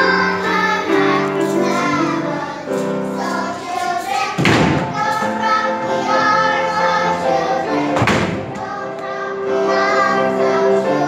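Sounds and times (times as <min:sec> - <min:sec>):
children's choir singing: 0:00.0 - 0:11.0
loud thump: 0:04.4 - 0:05.0, 0:08.0 - 0:08.7.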